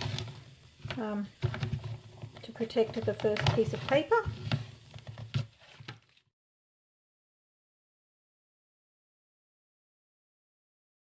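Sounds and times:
person speaking: 2.4 - 4.5
paper handling: 3.0 - 6.3.

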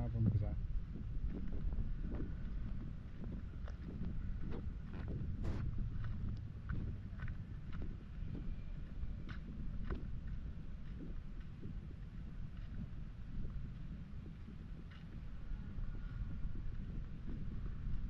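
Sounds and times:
wind rumble on microphone: 0.0 - 18.0
footsteps on dirt path: 0.2 - 18.0.

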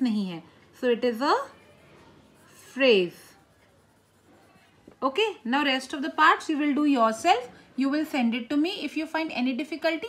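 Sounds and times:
pencil scratching on paper: 1.9 - 7.0.

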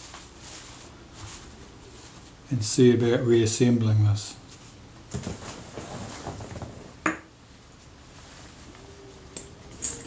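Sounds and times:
small metal parts clinking: 9.7 - 10.0.

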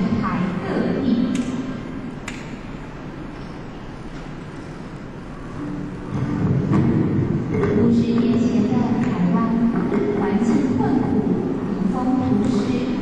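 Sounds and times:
recording hiss and hum: 0.0 - 13.0.

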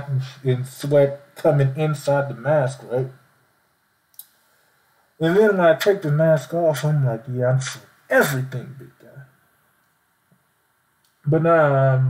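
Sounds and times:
man's voice: 0.0 - 3.1, 5.2 - 9.3, 11.3 - 12.0.

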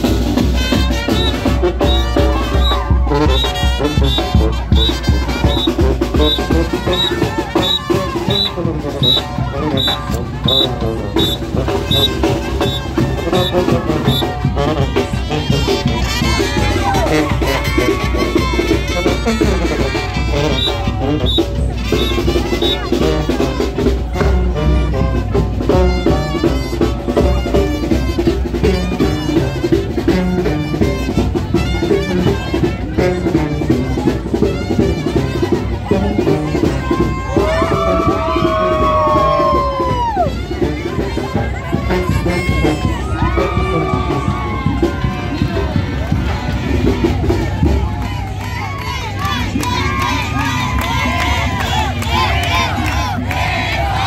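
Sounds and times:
brass band with drums: 0.0 - 54.0
crowd voices: 0.0 - 54.0
long falling calls: 4.8 - 14.3.

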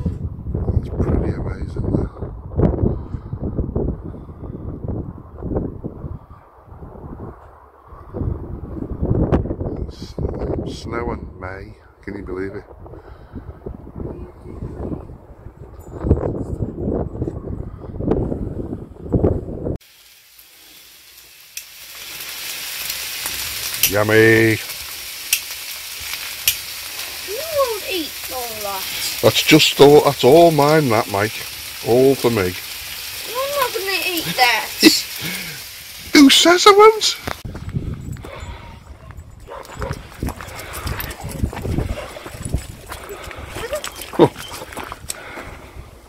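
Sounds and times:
bacon and sausages sizzling: 19.8 - 37.5
footsteps on stony path: 37.2 - 45.6.

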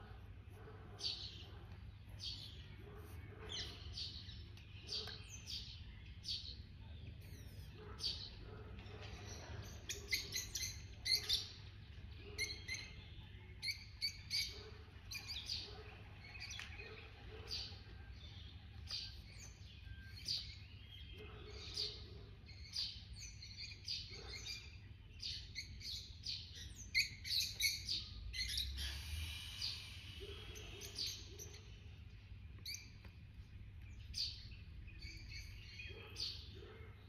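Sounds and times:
birds chirping: 0.0 - 37.0.

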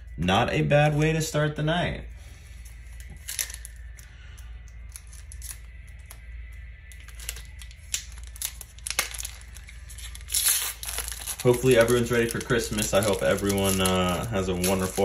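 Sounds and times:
foil wrapper crinkling and tearing: 3.0 - 4.1, 4.7 - 15.0.

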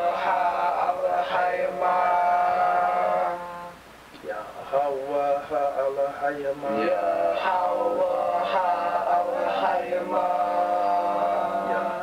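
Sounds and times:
man chanting a held note: 2.7 - 7.7.

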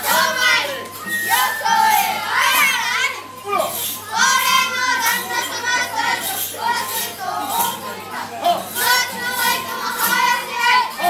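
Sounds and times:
children chanting or singing: 0.0 - 11.0.

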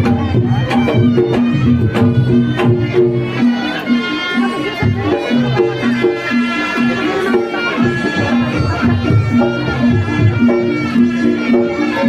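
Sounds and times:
hand drum beat: 0.0 - 12.0
held melodic notes: 0.0 - 12.0.

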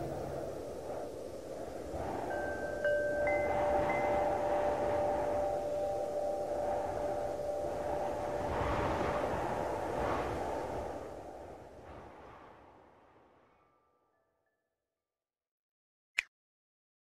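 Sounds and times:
wind gusts: 0.0 - 13.8
chime tones ringing: 2.3 - 9.1.

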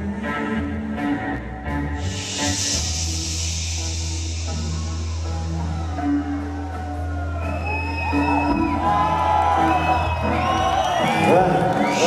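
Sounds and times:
rock band low droning note: 1.9 - 7.4
crowd whooping and cheering: 4.4 - 12.0.

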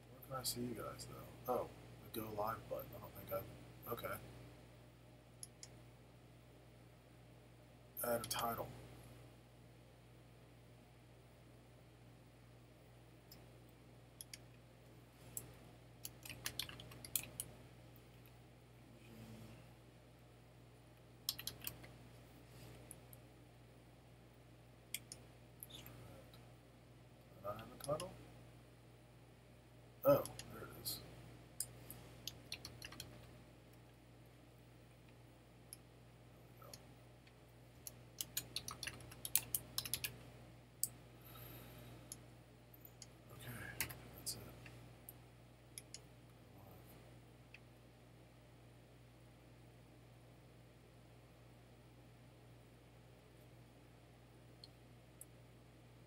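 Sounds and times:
faint low hum: 0.0 - 56.0
computer keyboard typing: 16.0 - 17.5, 21.3 - 21.9, 32.3 - 33.3, 37.8 - 40.2
separate clicks: 21.3 - 21.9.

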